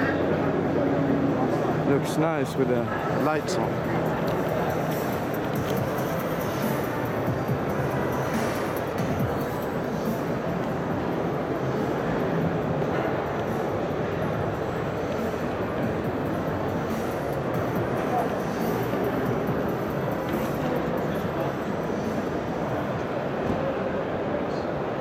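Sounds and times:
background music: 0.0 - 23.3
busy hall crowd din: 0.0 - 25.0.

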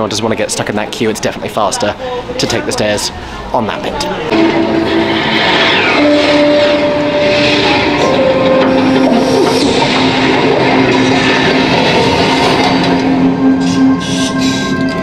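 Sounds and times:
rushing whooshing noise: 4.3 - 14.4
long held music notes: 4.3 - 15.0.

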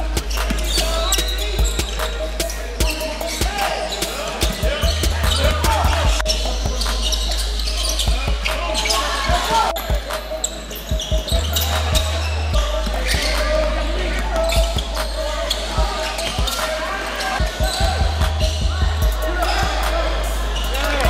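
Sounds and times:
indistinct voices: 0.0 - 21.0
music: 0.0 - 21.0.

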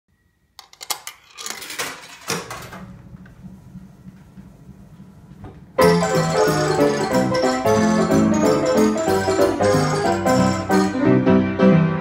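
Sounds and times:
coin rattling through mechanism: 0.6 - 2.7.

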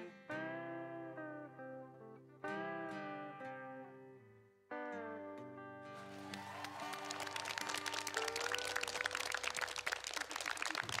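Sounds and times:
audience applause: 6.0 - 11.0.

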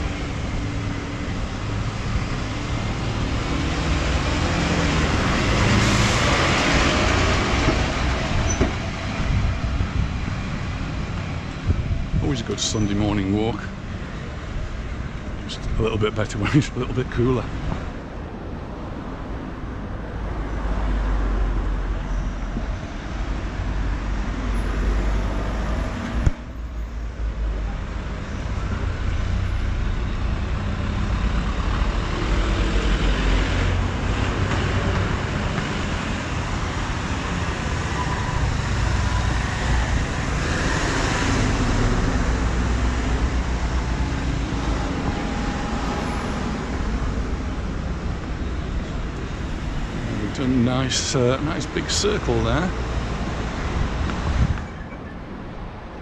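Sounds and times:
vehicles driving past: 0.0 - 56.0.

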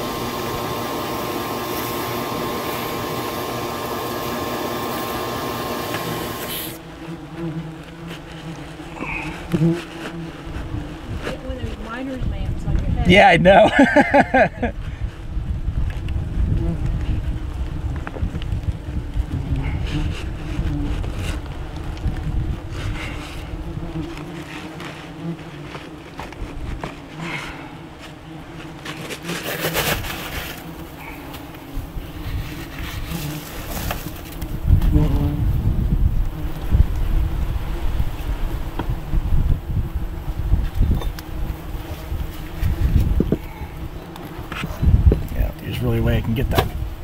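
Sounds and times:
wasps buzzing: 0.0 - 14.8, 16.0 - 47.0.

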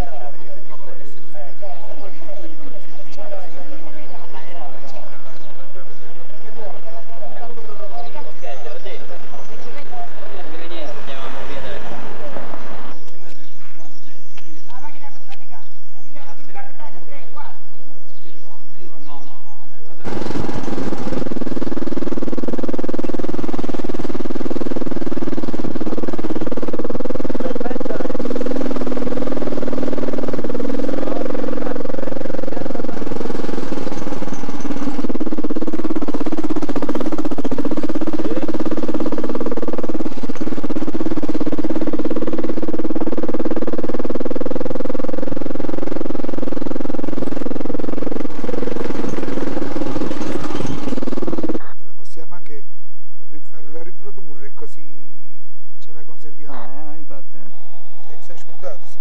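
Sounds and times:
motorcycle engine running: 0.0 - 17.0, 20.0 - 51.8.

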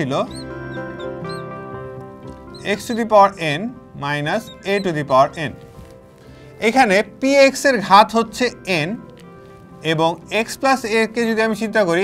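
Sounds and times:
marker squeaking on glass: 0.0 - 1.6, 2.3 - 3.4, 4.2 - 6.0
background music: 0.0 - 12.0.

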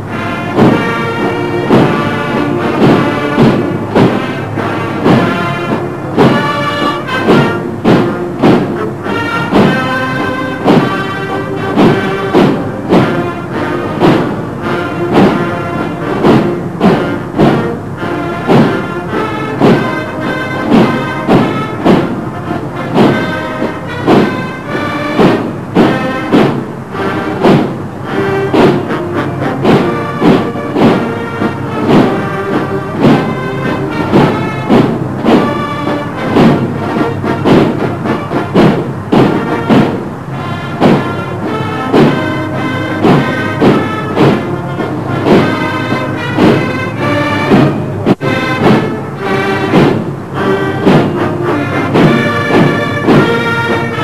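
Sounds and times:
heavy drum beat: 0.0 - 54.0
military band playing a march: 0.0 - 54.0.

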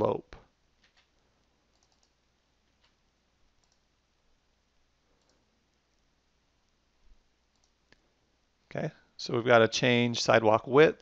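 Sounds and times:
computer mouse clicks: 0.8 - 2.2, 3.6 - 3.8, 5.2 - 5.8, 7.5 - 8.0.

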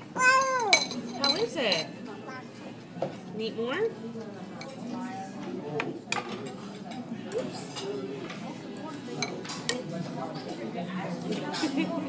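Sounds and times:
murmur of chatter: 0.0 - 12.0
chopstick clinking ceramic bowl: 0.4 - 1.9.

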